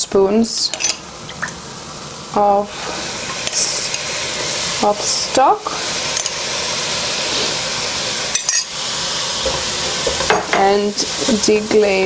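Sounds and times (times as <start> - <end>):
vegetables sizzling in a pot: 0.0 - 12.0.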